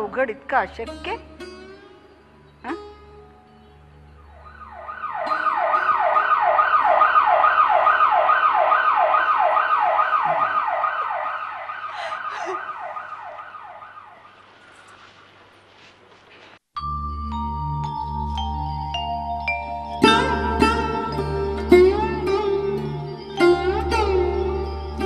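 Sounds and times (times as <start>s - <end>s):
emergency vehicle siren yelping: 4.3s - 14.4s.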